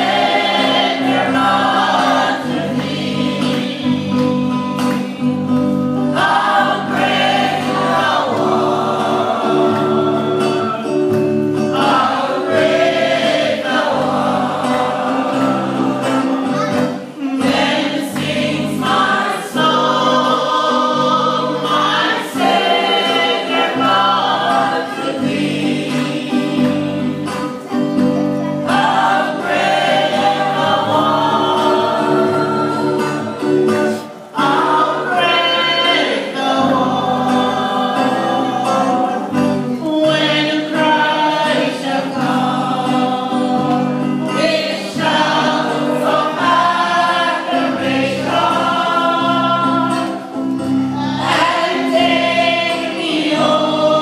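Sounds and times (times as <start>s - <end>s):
congregation singing a hymn: 0.0s - 54.0s
held accompanying chords: 0.0s - 54.0s.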